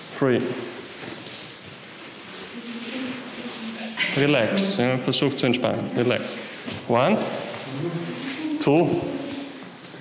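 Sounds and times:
man speaking: 0:04.0 - 0:08.0, 0:08.6 - 0:09.3.

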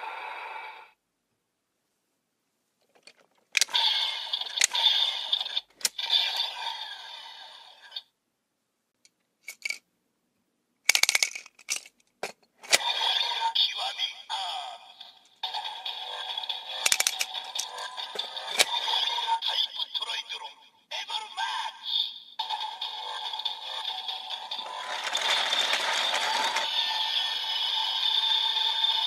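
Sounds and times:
toy belt electronic voice calls: 0:03.6 - 0:07.3, 0:12.7 - 0:28.8.

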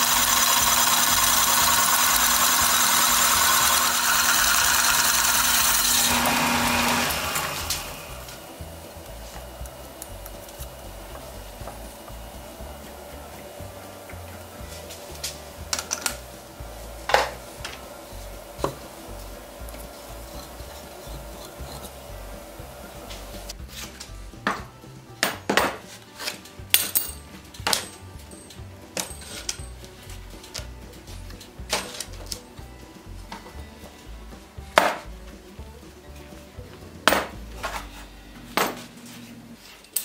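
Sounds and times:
steady hum: 0:00.0 - 0:24.4.

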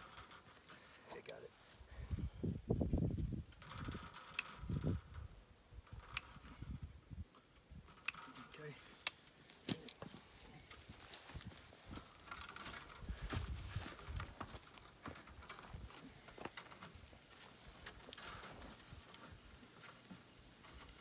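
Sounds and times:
wire clicks and scrapes: 0:00.0 - 0:01.4, 0:02.0 - 0:21.0.

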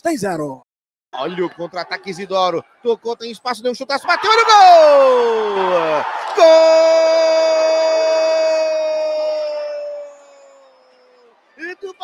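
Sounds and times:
man talking: 0:00.0 - 0:00.6, 0:01.2 - 0:10.6, 0:11.6 - 0:12.0
man shouting goal: 0:04.0 - 0:10.2.

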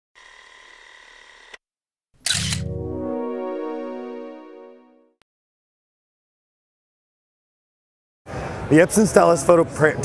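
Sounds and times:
sustained musical chord: 0:02.6 - 0:05.2.

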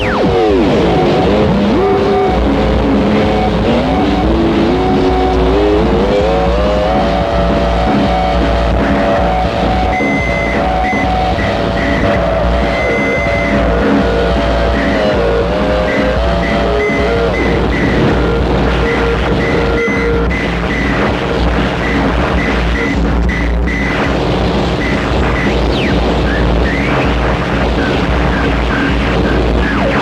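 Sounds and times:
dense wall of noise: 0:00.0 - 0:30.0
pitched tone climbing in steps: 0:00.0 - 0:30.0
steady low drone: 0:00.0 - 0:30.0
stuttering higher tone: 0:00.0 - 0:30.0.

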